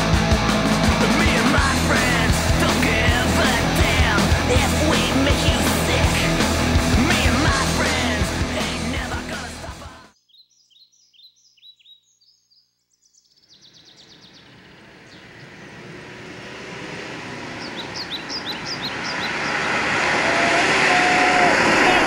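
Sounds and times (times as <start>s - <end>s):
birds chirping: 10.1s - 20.2s
car approaching on road: 13.7s - 22.0s.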